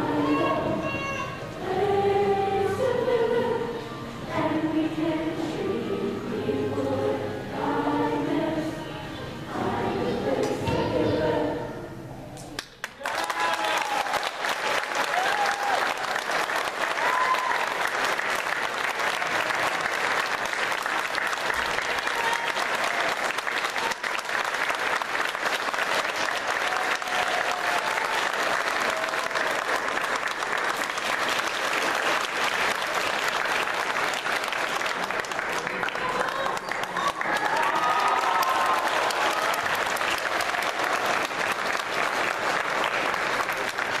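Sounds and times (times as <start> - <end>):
audience applauding: 12.6 - 44.0
people whooping and calling out: 13.0 - 14.3, 15.0 - 16.2, 16.9 - 17.8, 21.9 - 23.2, 26.6 - 28.3, 36.0 - 39.8.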